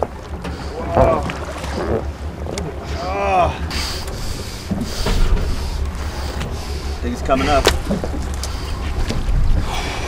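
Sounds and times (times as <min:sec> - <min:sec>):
boat engine rumble: 0:00.0 - 0:10.0.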